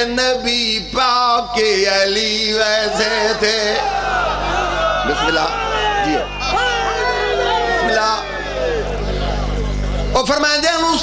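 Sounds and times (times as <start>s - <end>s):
public address system hum and hiss: 0.0s - 11.0s
crowd voices calling out: 2.5s - 10.2s.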